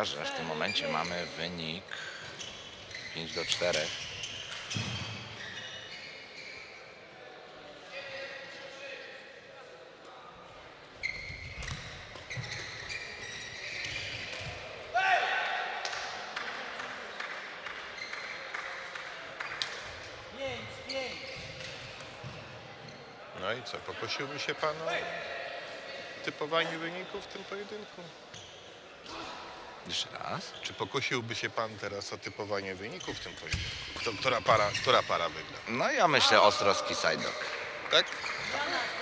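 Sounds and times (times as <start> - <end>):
shoes squeaking on court: 0.3 - 7.0, 10.9 - 14.7, 18.0 - 18.5, 20.8 - 23.2, 28.3 - 28.9, 32.2 - 35.6, 37.0 - 39.0.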